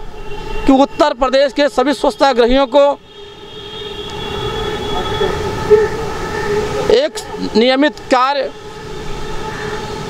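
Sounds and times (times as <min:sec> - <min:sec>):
droning machine noise with held tones: 0:03.6 - 0:10.0.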